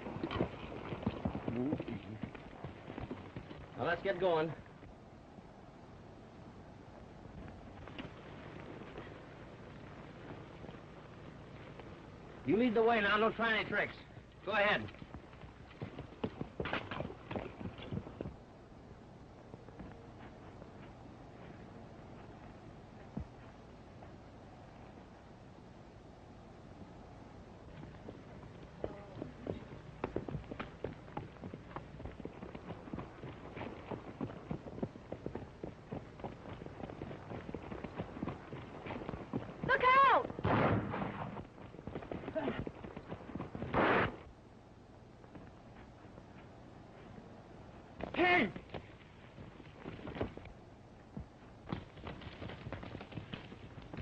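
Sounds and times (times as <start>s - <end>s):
horse hooves clopping: 0.0s - 5.1s, 7.0s - 25.6s, 26.6s - 40.4s, 41.1s - 54.0s.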